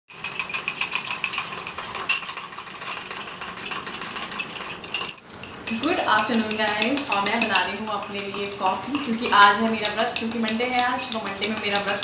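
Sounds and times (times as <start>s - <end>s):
spoon clinking in ceramic cup: 0.1s - 12.0s.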